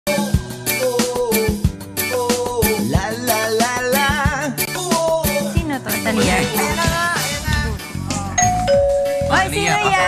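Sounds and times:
two-note doorbell chime: 0:08.4 - 0:09.4.

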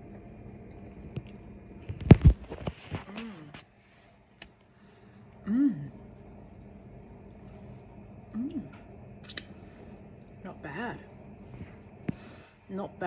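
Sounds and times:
woman humming mm: 0:03.0 - 0:03.7, 0:05.4 - 0:06.0, 0:08.3 - 0:08.8.

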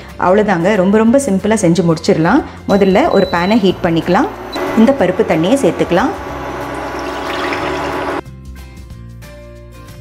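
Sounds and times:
background music: 0:00.0 - 0:10.0
water splashing into pan: 0:06.3 - 0:08.2.

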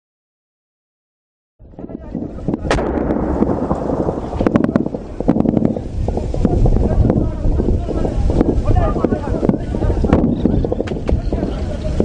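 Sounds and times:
wind rumble on microphone: 0:01.6 - 0:12.0
sharp cracks: 0:02.7 - 0:05.8.

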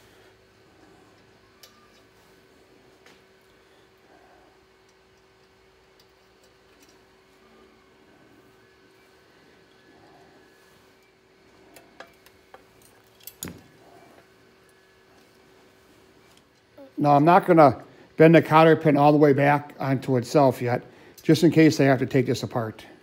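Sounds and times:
faint steady hum: 0:00.0 - 0:23.0
metal parts clicking and tapping: 0:05.1 - 0:07.0.

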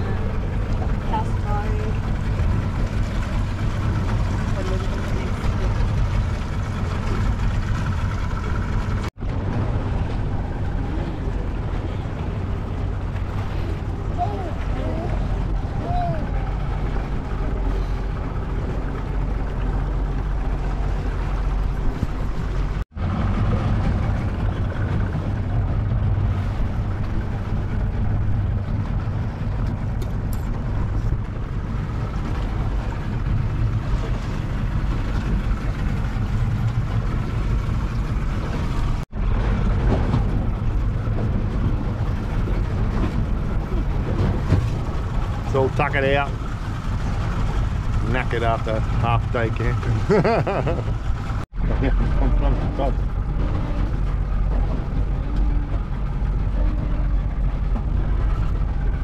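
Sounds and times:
outboard motor running: 0:00.0 - 0:59.0
water rushing past hull: 0:00.0 - 0:59.0
wind on microphone: 0:05.2 - 0:45.6.

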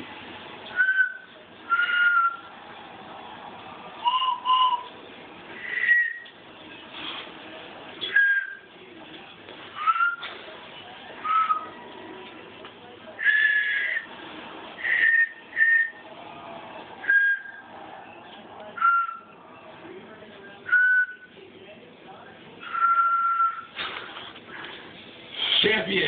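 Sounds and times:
pitched whistles playing a tune: 0:00.7 - 0:02.5, 0:04.0 - 0:05.0, 0:05.6 - 0:06.3, 0:08.0 - 0:08.7, 0:09.8 - 0:10.3, 0:11.2 - 0:11.8, 0:13.2 - 0:14.1, 0:14.8 - 0:16.0, 0:17.0 - 0:17.7, 0:18.8 - 0:19.4, 0:20.6 - 0:21.3, 0:22.6 - 0:23.8.

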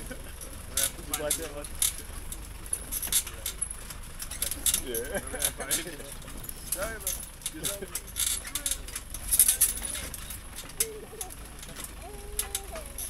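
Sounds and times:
vehicle body rattling over stones: 0:00.0 - 0:13.0
vehicle engine and road rumble: 0:00.0 - 0:13.0.

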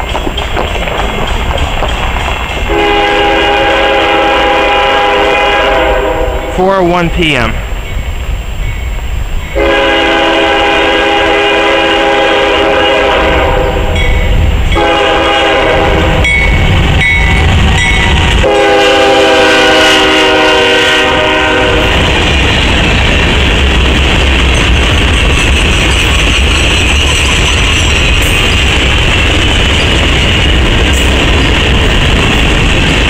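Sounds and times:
train wheels on rails: 0:00.0 - 0:06.5, 0:07.3 - 0:33.0
diesel locomotive rumble: 0:00.0 - 0:33.0
locomotive air horn blasts: 0:02.7 - 0:06.6, 0:09.6 - 0:14.0, 0:14.7 - 0:16.3, 0:18.2 - 0:21.9.

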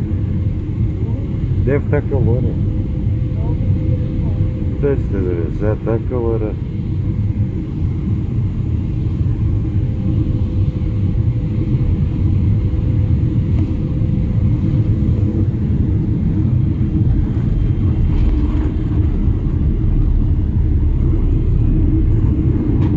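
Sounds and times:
airliner cabin engine rumble: 0:00.0 - 0:22.9.

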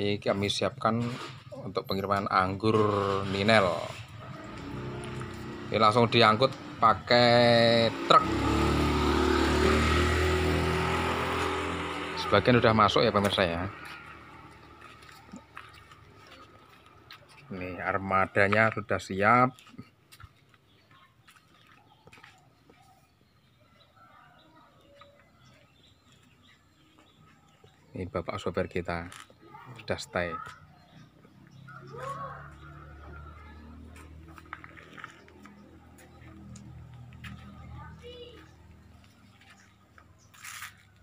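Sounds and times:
soft crunch: 0:13.2 - 0:17.5, 0:19.5 - 0:23.0, 0:33.3 - 0:41.0.

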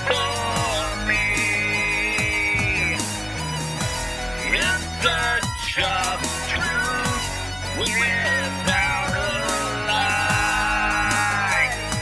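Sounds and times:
drum machine beat: 0:00.0 - 0:12.0
synth bass line: 0:00.0 - 0:12.0.

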